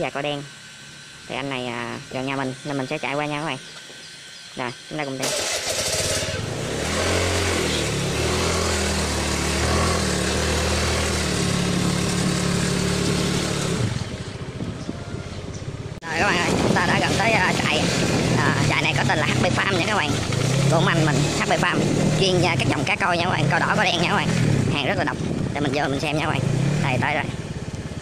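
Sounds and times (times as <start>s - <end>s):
motor scooter engine: 0.0s - 28.0s.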